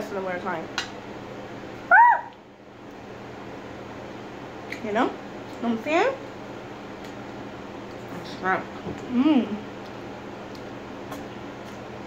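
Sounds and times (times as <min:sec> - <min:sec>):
high-pitched vocal call: 0:01.9 - 0:02.4.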